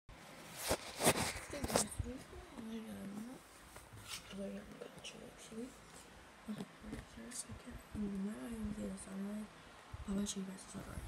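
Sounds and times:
phone rustling and rubbing: 0:00.2 - 0:02.3, 0:03.1 - 0:04.6
soft voice: 0:01.3 - 0:03.4.

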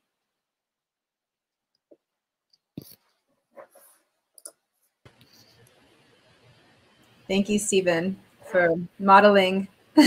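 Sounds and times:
faint microphone hiss: 0:01.7 - 0:10.0.

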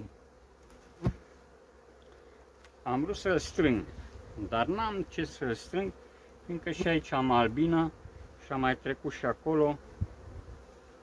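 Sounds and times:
bees humming: 0:00.0 - 0:11.0.

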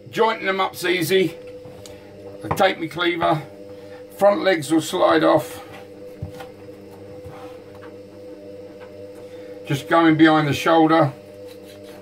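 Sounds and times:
electrical machine hum: 0:00.0 - 0:12.0.

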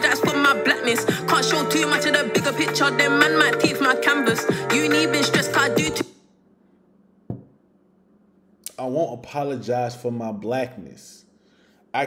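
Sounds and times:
rapping over a beat: 0:00.0 - 0:06.0.

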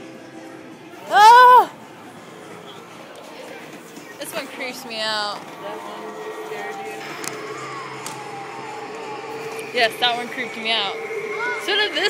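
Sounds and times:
animatronic prop mechanical hum: 0:05.4 - 0:12.0.

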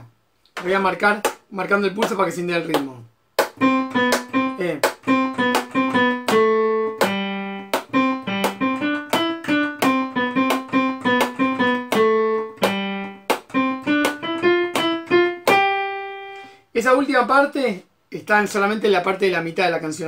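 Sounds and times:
digital piano melody: 0:03.5 - 0:17.3
metronome clicks: 0:03.6 - 0:15.8.

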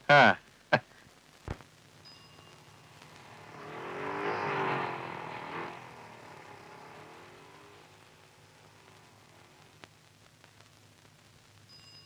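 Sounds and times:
vehicle driving past: 0:02.5 - 0:09.7.

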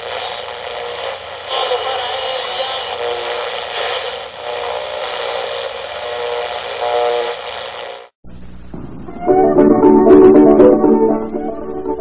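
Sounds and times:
radio static hiss: 0:00.0 - 0:08.2.

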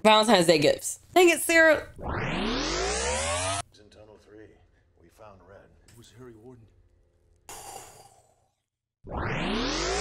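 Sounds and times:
breathy sigh: 0:07.5 - 0:08.5.

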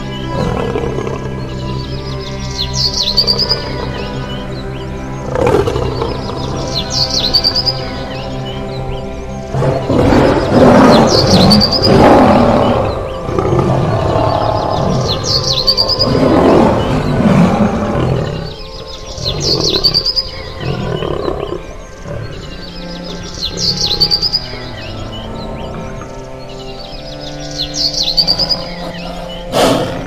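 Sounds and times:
background music: 0:00.0 - 0:30.0
big cat roaring: 0:00.3 - 0:01.7, 0:05.2 - 0:06.7, 0:09.5 - 0:24.0, 0:28.3 - 0:30.0.

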